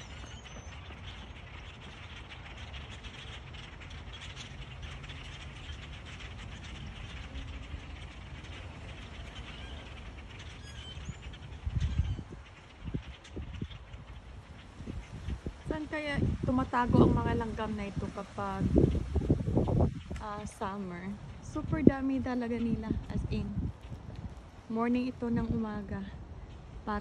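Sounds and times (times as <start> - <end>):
flock of birds chirping: 0.0 - 27.0
wind rumble on microphone: 0.0 - 27.0.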